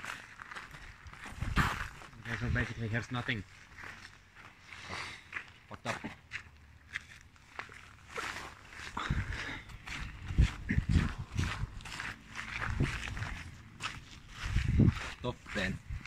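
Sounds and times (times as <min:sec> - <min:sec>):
footsteps on grass: 0:00.0 - 0:16.0
heavy thudding steps: 0:08.9 - 0:16.0.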